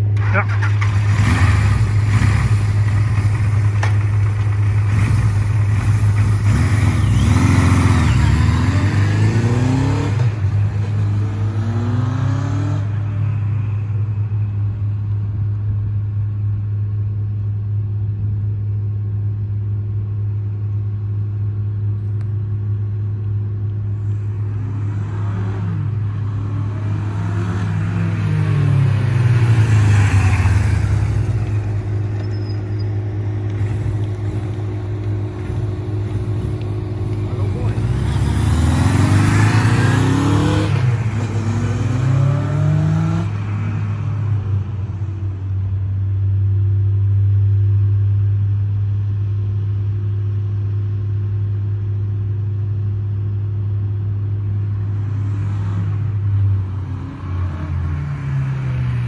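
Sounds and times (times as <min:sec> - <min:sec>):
motorcycle engine revving: 0:00.2 - 0:13.0, 0:24.5 - 0:43.4.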